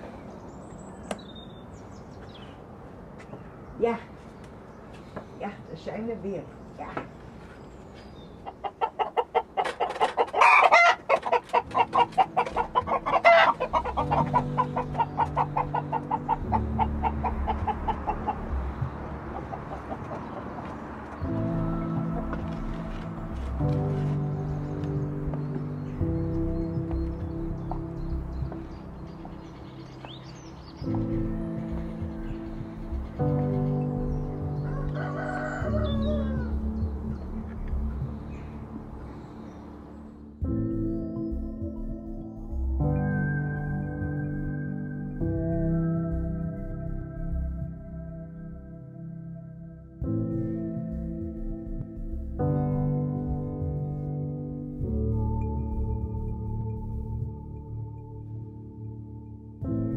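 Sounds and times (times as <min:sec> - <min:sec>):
chickens clucking: 0:08.3 - 0:21.3
chicken squawks: 0:08.4 - 0:18.4
background music with low notes: 0:09.6 - 0:59.9
rooster crowing: 0:10.4 - 0:17.2, 0:34.6 - 0:36.8.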